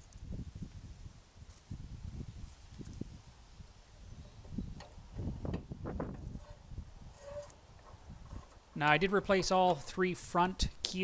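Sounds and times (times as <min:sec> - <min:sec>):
metal and rubber rollers knocking: 0:07.2 - 0:10.0.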